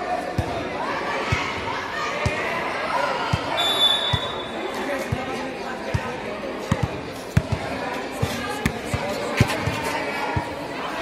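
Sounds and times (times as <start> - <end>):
players' voices and shouts: 0.0 - 11.0
basketball bouncing on concrete: 5.9 - 10.5.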